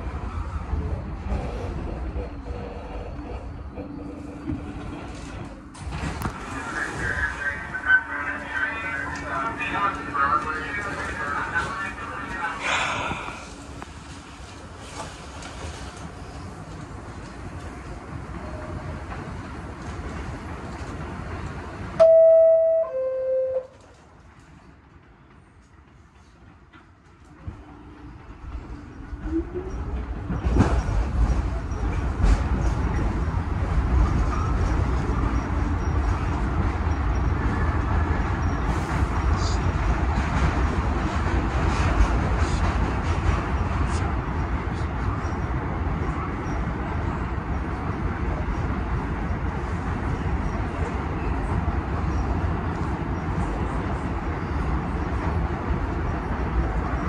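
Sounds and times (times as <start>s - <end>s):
train wheels rumbling and rattling: 0.0s - 22.0s, 23.7s - 57.0s
two-note door chime: 22.0s - 23.7s.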